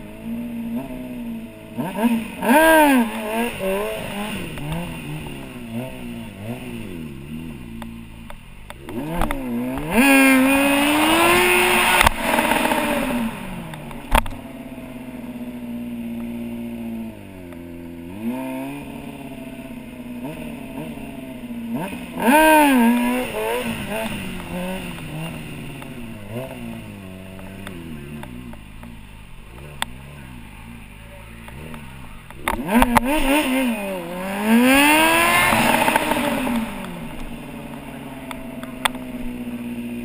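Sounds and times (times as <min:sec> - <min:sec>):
motorcycle engine revving: 0:00.0 - 0:40.0.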